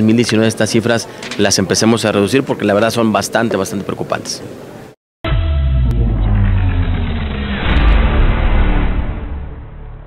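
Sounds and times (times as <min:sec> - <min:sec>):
deep rumble of low tones: 0:05.3 - 0:10.0
whoosh: 0:05.8 - 0:10.0.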